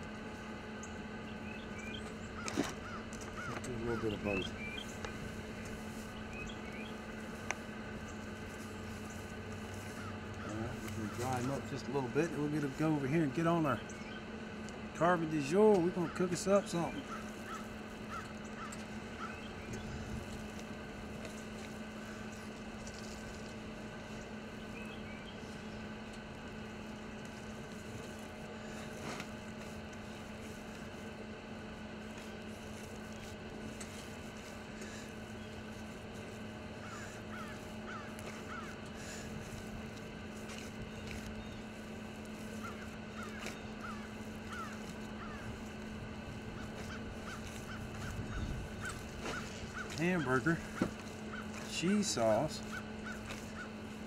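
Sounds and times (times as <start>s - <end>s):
steady low hum: 0.0s - 54.0s
faint bird calls: 0.2s - 13.0s, 13.6s - 54.0s.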